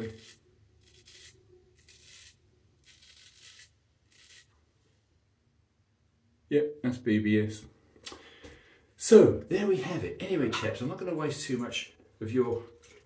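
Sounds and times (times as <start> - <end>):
razor scraping stubble: 0.0 - 4.5.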